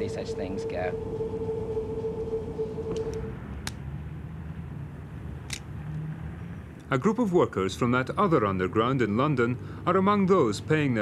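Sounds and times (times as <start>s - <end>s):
mid-pitched hum: 0.0s - 3.6s
street traffic rumble: 0.0s - 11.0s.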